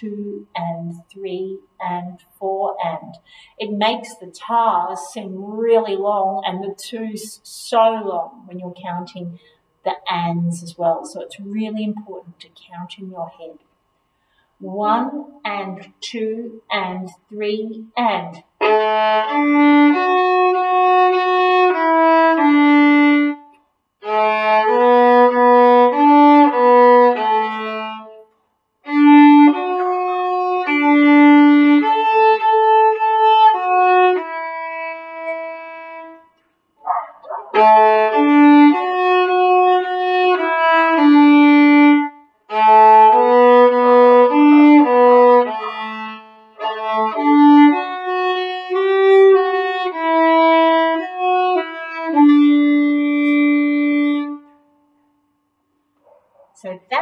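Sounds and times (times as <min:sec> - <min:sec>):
solo violin melody: 0:18.6 - 0:28.2, 0:28.8 - 0:36.4, 0:37.5 - 0:54.6.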